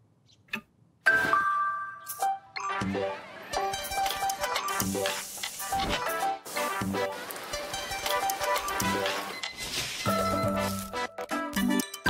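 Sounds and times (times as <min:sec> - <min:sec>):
jingly music: 0:07.7 - 0:12.0.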